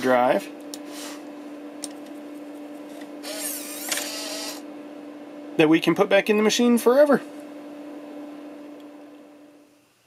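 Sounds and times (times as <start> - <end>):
steady hum: 0.0 - 10.0
floppy drive eject whirring: 3.1 - 4.6.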